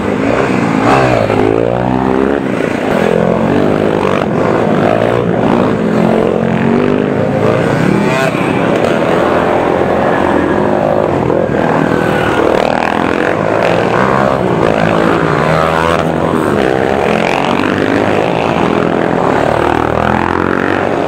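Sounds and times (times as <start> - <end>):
dirt bikes revving past: 0.0 - 21.0.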